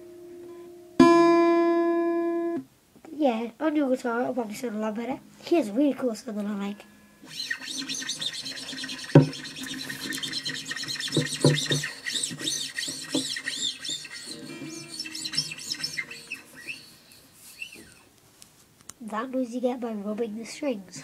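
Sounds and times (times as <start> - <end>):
open guitar strings ringing: 0.0 - 2.7, 4.2 - 18.0
fingers scraping guitar strings: 4.4 - 18.1.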